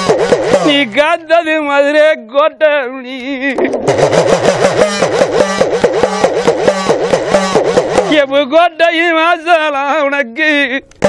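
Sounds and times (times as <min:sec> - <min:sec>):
person singing: 0:02.9 - 0:03.8
hourglass drum roll: 0:03.6 - 0:08.3.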